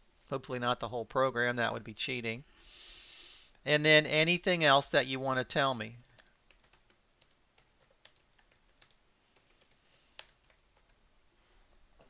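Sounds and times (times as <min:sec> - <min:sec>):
faint keyboard typing: 0:06.0 - 0:11.1.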